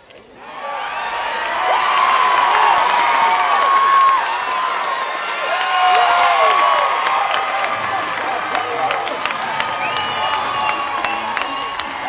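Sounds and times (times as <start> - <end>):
crowd cheering and screaming: 0.4 - 12.0.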